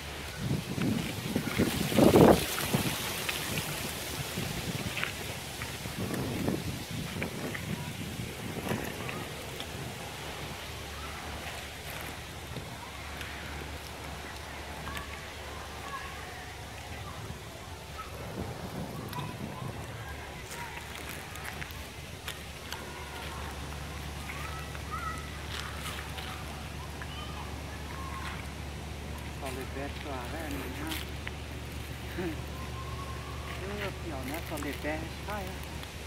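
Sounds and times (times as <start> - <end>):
wind blowing across microphone: 0.0 - 36.0.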